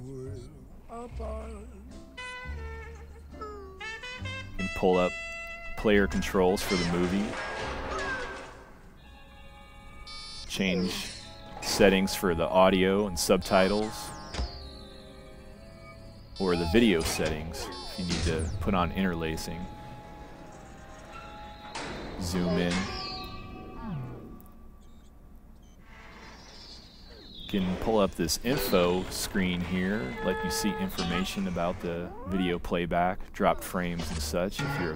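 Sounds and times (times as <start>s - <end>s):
faint movie soundtrack music: 0.0s - 34.9s.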